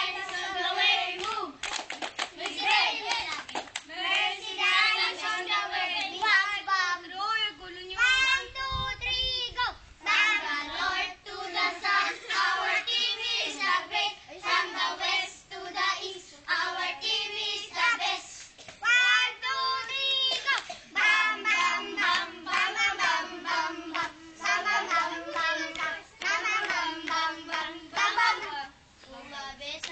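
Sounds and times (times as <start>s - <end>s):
children singing: 0.0s - 1.5s, 18.9s - 29.3s.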